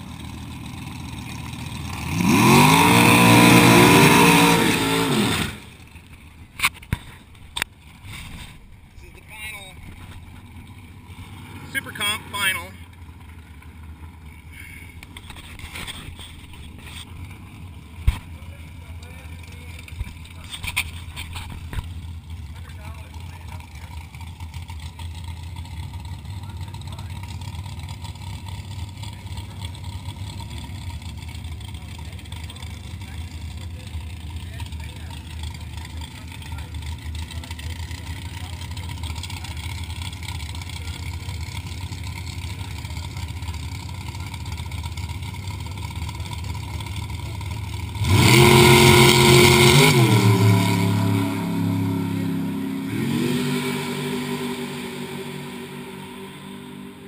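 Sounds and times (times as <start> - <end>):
race car engines idling: 0.0 - 57.0
race cars accelerating: 1.2 - 5.8, 45.5 - 57.0.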